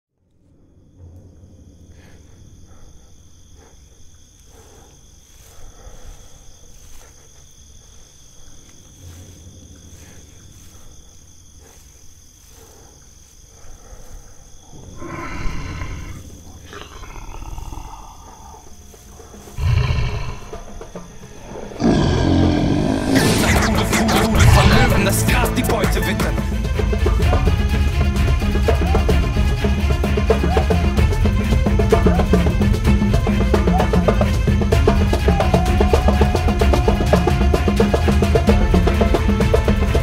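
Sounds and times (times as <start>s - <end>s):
high insect tones: 0.3s - 40.0s
lion roaring: 14.6s - 25.3s.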